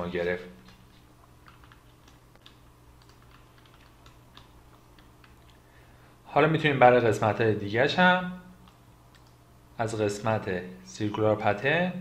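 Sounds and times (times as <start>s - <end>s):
low steady hum: 0.0s - 12.0s
keyboard and mouse clicks: 0.6s - 5.6s, 8.6s - 9.4s.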